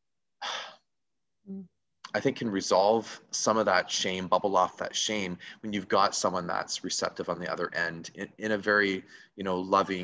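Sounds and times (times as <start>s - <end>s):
person inhaling sharply: 0.4s - 0.8s
person humming: 1.5s - 1.7s.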